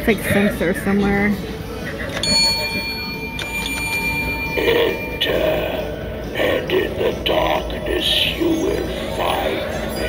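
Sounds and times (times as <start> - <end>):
bell ringing: 2.2 - 6.1.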